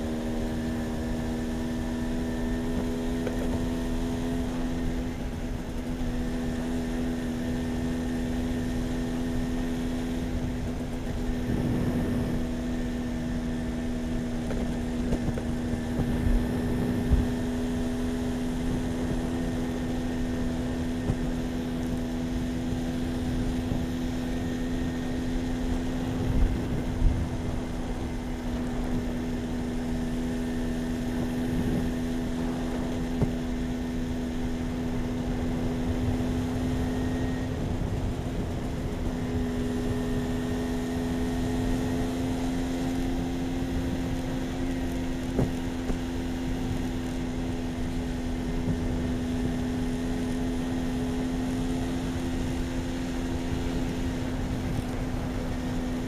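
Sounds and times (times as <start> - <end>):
moped engine droning: 0.0 - 56.0
wind and road noise: 0.0 - 56.0.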